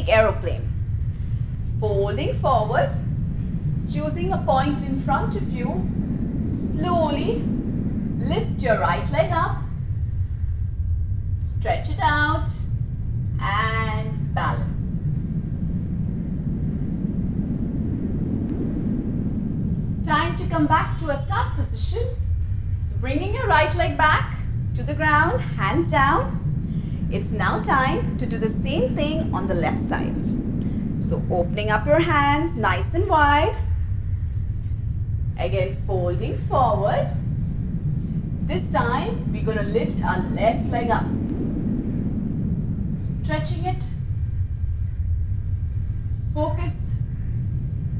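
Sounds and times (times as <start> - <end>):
aircraft engine drone: 0.0 - 47.9
steady low rumbling: 0.0 - 47.9.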